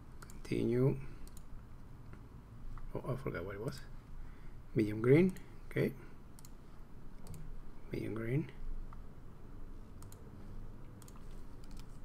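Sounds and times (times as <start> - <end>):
computer mouse clicking: 0.2 - 0.4, 1.2 - 1.5, 6.4 - 6.6, 7.2 - 7.5, 10.0 - 12.0.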